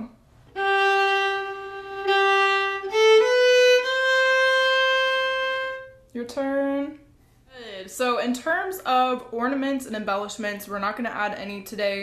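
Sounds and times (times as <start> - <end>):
solo violin bowed slowly: 0.0 - 6.0.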